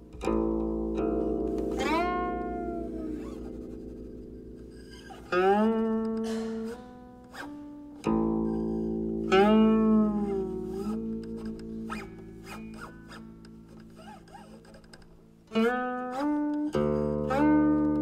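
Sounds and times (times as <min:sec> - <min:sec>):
plucked guqin notes: 0:00.0 - 0:18.0.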